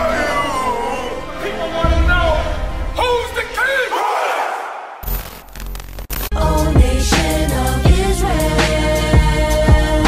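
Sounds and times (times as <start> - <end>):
crowd of men shouting: 3.6 - 5.0.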